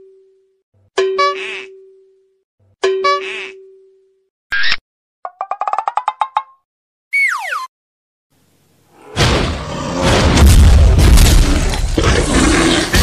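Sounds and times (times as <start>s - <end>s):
cartoon popping notes: 7.1s - 7.7s
loud rumbling boom: 9.2s - 11.9s.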